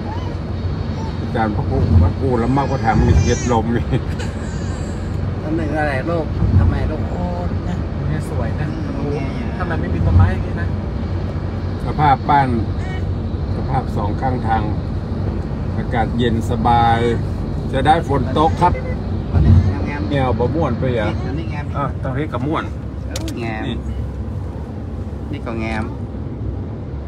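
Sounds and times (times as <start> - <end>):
vehicle road and engine rumble: 0.0 - 27.0
man speaking: 1.3 - 4.0.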